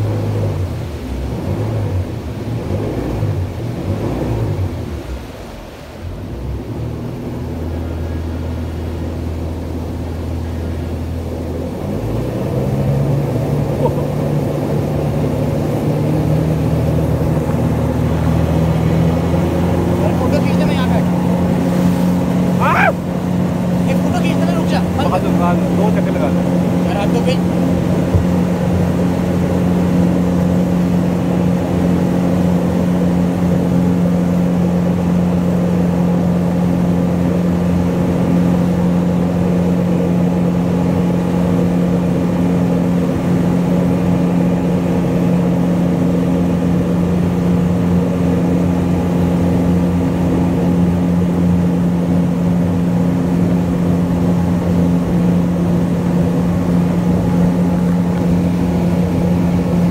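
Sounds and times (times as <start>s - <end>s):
motorboat engine droning: 0.0s - 59.9s
river water rushing past hull: 0.0s - 59.9s.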